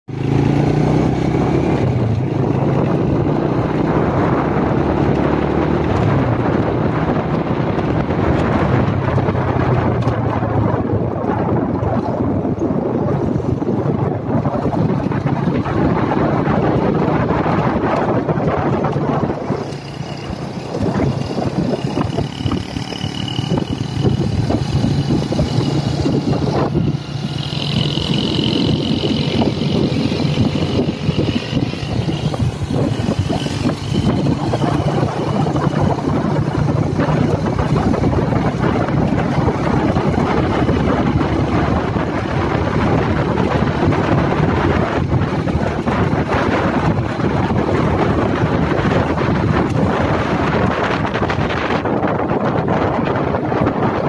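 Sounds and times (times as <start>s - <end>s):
motorbike engine running: 0.1s - 54.0s
wind buffeting microphone: 0.1s - 54.0s.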